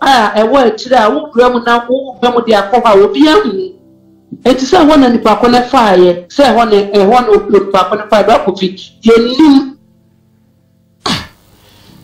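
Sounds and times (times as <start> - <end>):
faint background music: 0.0 - 12.0
person sneezing: 11.0 - 11.4.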